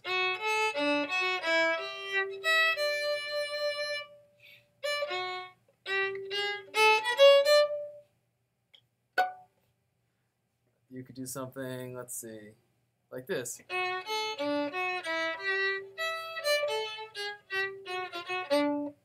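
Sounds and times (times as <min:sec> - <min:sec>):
bowed violin: 0:00.0 - 0:08.0, 0:13.6 - 0:19.0.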